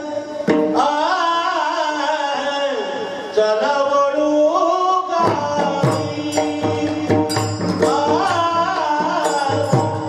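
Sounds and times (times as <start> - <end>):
chanted devotional singing: 0.0 - 10.0
drum strokes: 5.2 - 10.0.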